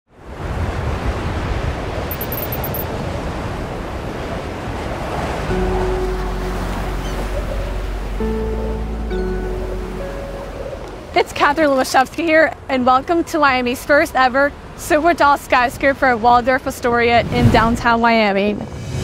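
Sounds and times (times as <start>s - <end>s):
sustained music chords: 5.5s - 11.2s.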